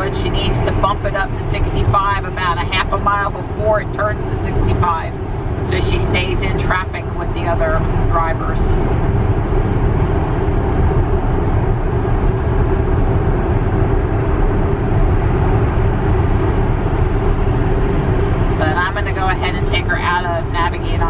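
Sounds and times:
car road noise in cabin: 0.0s - 21.0s.

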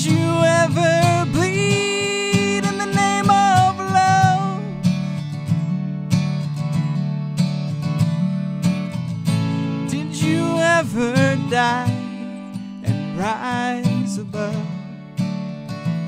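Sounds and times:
man singing: 0.0s - 4.8s, 9.8s - 14.9s
acoustic guitar strumming: 0.0s - 16.0s.

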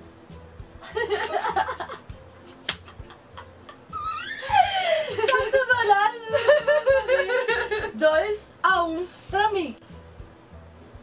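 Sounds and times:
people laughing: 0.8s - 7.9s.

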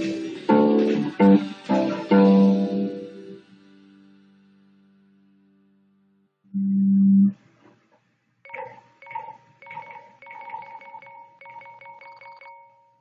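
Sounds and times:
bass guitar note: 6.5s - 7.3s.

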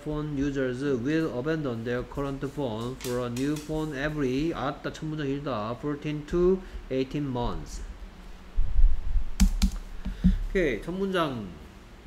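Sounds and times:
low dull rumble: 7.4s - 9.4s
keyboard key clicks: 9.4s - 9.8s.

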